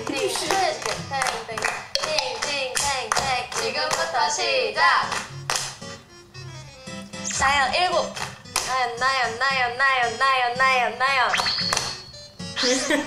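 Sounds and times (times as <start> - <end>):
women clapping in rhythm: 0.0 - 5.8
background music: 0.0 - 13.0.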